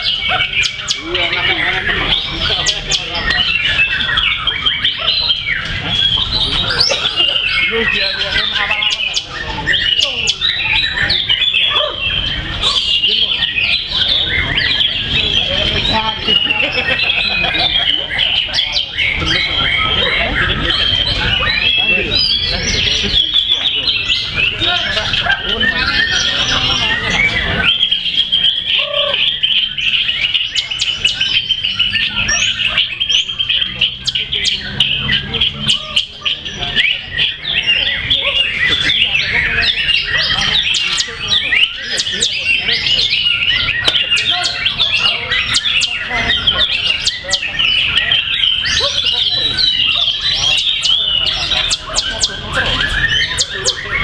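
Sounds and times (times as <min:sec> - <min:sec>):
songbirds singing: 0:00.0 - 0:54.0.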